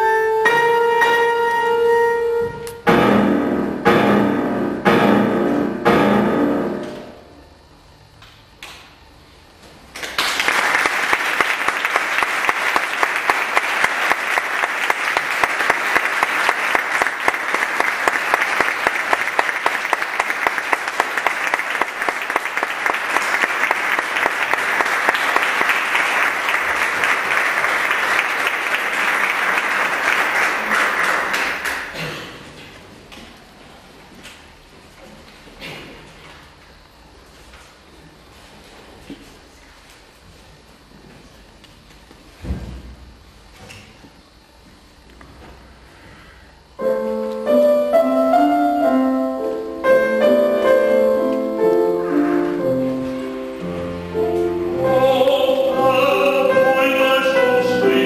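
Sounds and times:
piano notes: 0:00.0 - 0:07.6, 0:46.8 - 0:58.0
audience applause: 0:10.0 - 0:32.0.

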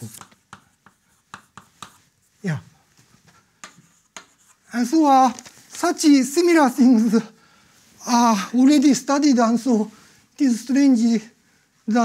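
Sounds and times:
chalk tapping and scraping: 0:00.0 - 0:05.0.

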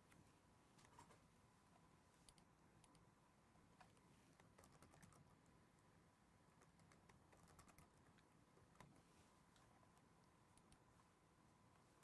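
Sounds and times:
faint keyboard typing: 0:03.8 - 0:05.5, 0:06.5 - 0:10.9.

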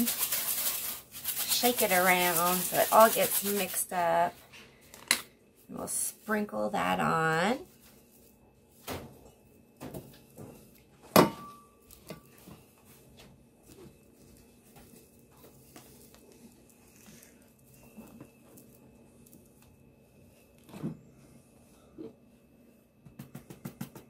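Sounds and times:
faint steady hum: 0:00.1 - 0:24.0.

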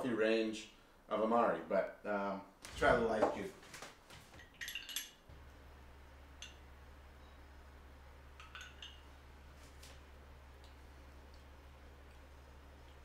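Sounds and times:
low steady hum: 0:04.3 - 0:13.0
glassware and utensils clinking: 0:04.4 - 0:05.3, 0:08.4 - 0:09.1.

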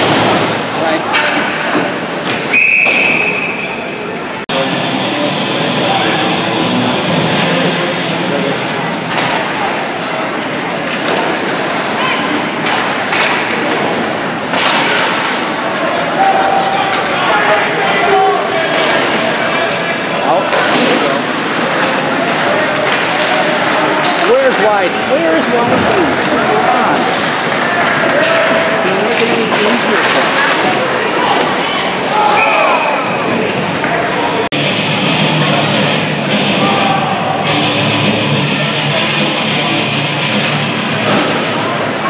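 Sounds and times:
puck and players hitting boards: 0:00.0 - 0:03.5, 0:09.0 - 0:09.6, 0:10.8 - 0:11.6, 0:12.5 - 0:15.9, 0:18.7 - 0:19.4, 0:20.5 - 0:24.6, 0:27.2 - 0:31.6
spectators talking and calling out: 0:00.0 - 0:42.0.

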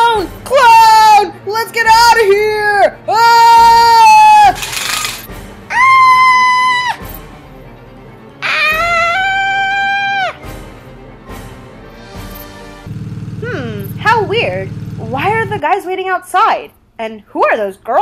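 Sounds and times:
people screaming in fright: 0:05.7 - 0:07.0, 0:08.4 - 0:10.4.

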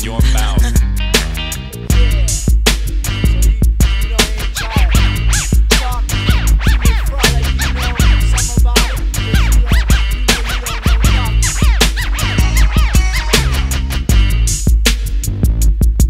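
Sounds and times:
deep bass line: 0:00.0 - 0:16.0
drum beat: 0:00.0 - 0:16.0
record scratching: 0:04.0 - 0:14.2.

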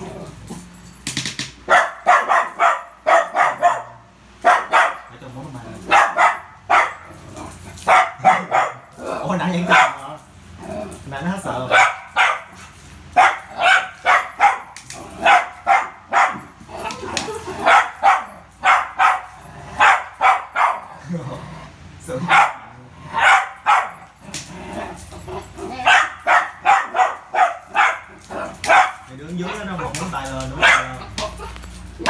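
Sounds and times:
small dog barking: 0:01.7 - 0:05.1, 0:05.9 - 0:07.1, 0:07.8 - 0:09.0, 0:09.6 - 0:10.0, 0:11.7 - 0:12.6, 0:13.2 - 0:16.6, 0:17.6 - 0:21.0, 0:22.3 - 0:24.1, 0:25.7 - 0:29.6, 0:30.6 - 0:31.6.

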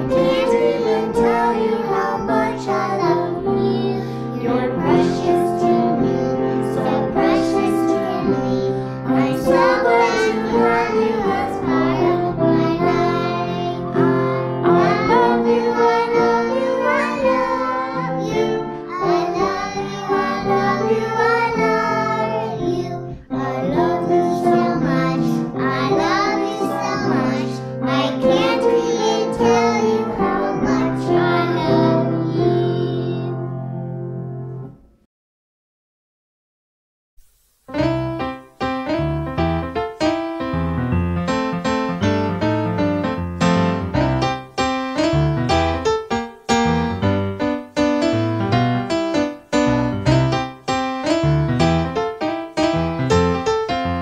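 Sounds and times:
woman and girls singing: 0:00.0 - 0:33.5
piano: 0:00.0 - 0:35.1, 0:37.2 - 0:54.0.

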